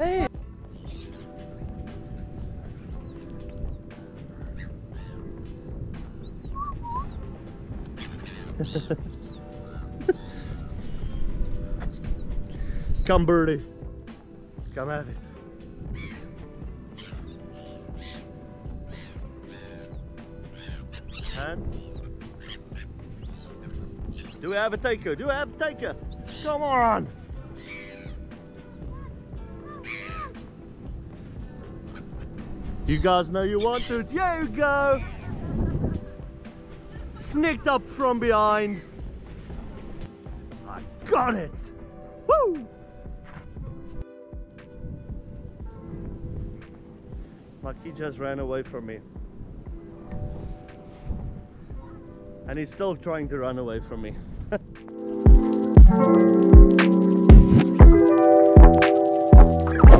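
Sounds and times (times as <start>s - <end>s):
gulls calling: 0.0s - 42.8s, 54.5s - 59.9s
background music: 0.0s - 59.9s.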